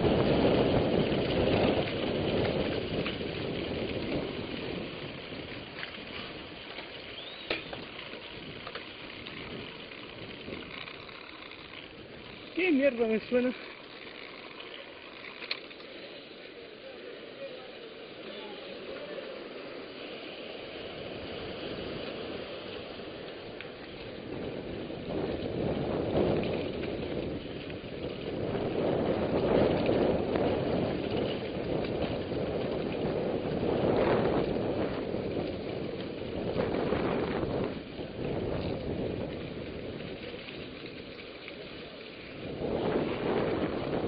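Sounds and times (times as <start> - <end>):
wind rushing over microphone: 0.0 - 13.6, 19.5 - 44.0
bike tyres rolling rumble: 0.0 - 44.0
bike knocks: 6.7 - 8.0.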